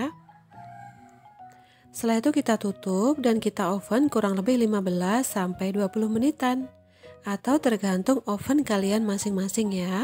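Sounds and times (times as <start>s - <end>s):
rooster crowing faintly: 0.3s - 1.6s.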